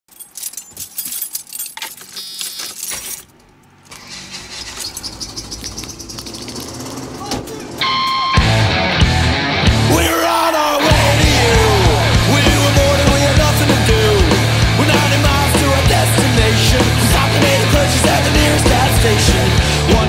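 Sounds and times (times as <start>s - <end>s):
sharp clicks and rattles: 0.1s - 7.6s
punk rock band playing: 7.7s - 20.0s.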